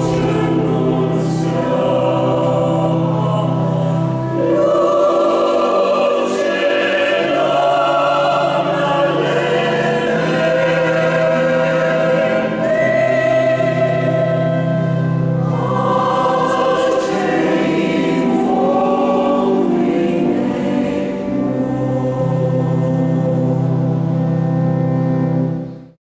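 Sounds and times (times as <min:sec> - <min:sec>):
mixed choir singing chords: 0:00.0 - 0:26.0.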